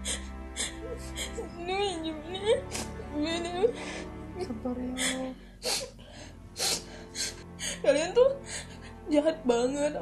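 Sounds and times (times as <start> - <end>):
soft background music: 0.0 - 10.0
woman sniffling and crying: 2.5 - 4.2, 5.0 - 7.8.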